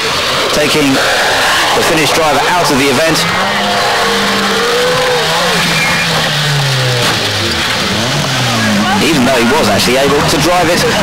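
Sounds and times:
rally car engine: 0.0s - 11.0s.

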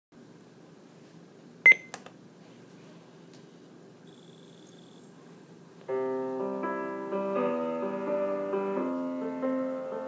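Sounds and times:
high steady beep: 1.7s - 1.9s.

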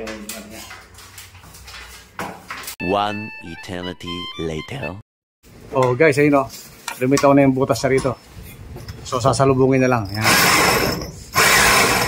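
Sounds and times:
person speaking: 2.8s - 5.0s.

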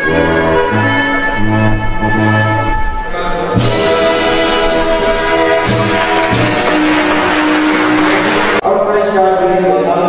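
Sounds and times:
band music with brass note: 0.0s - 8.6s
audience applauding: 4.2s - 8.6s.

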